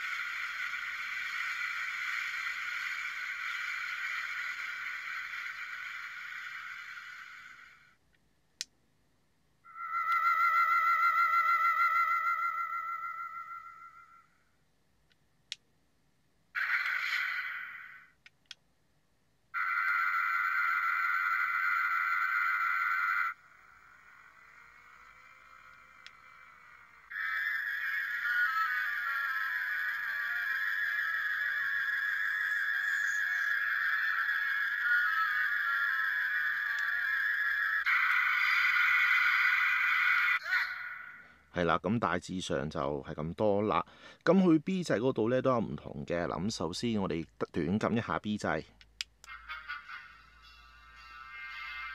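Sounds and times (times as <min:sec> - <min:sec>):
electronic beam effects: 0:00.0 - 0:07.9, 0:09.7 - 0:14.3, 0:16.6 - 0:18.2, 0:19.6 - 0:40.5
toy electronic sound effects: 0:00.0 - 0:08.0, 0:09.7 - 0:14.3, 0:16.6 - 0:18.2, 0:19.6 - 0:41.3, 0:49.2 - 0:51.9
ringing electronic tone: 0:09.7 - 0:14.3, 0:27.1 - 0:38.6.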